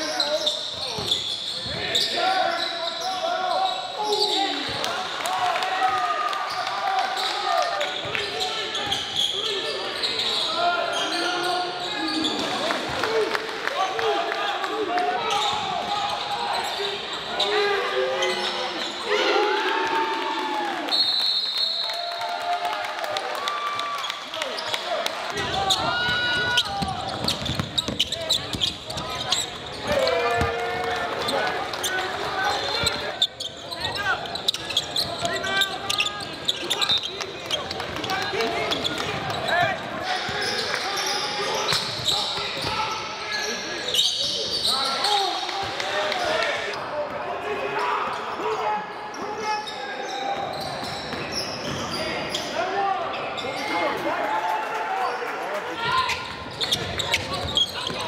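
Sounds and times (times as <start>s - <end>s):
sneakers squeaking: 0.0s - 4.8s, 6.5s - 12.6s, 15.2s - 19.1s, 25.4s - 46.5s, 49.0s - 53.9s, 55.8s - 58.0s.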